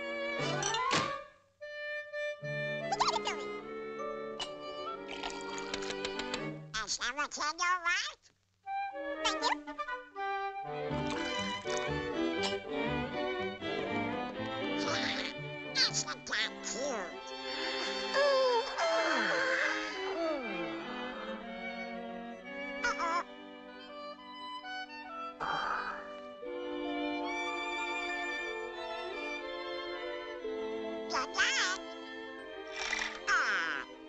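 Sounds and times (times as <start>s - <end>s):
light orchestral music: 0.0s - 6.7s, 8.7s - 34.0s
quacking cartoon duck voice: 6.7s - 8.3s, 9.2s - 9.6s, 14.8s - 17.2s, 22.8s - 23.3s, 31.1s - 31.9s, 33.1s - 33.9s.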